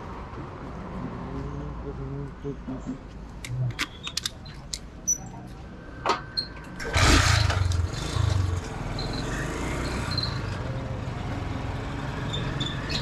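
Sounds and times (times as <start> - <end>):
motorcycle engine starting and running: 6.8 - 13.0.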